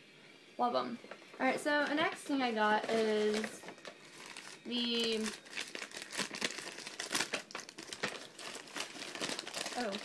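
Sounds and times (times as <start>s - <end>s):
paper bag crinkling: 1.7s - 10.0s.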